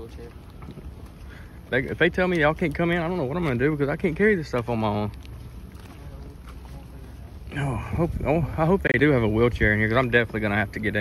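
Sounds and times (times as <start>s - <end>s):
wind rumble: 7.2s - 10.4s.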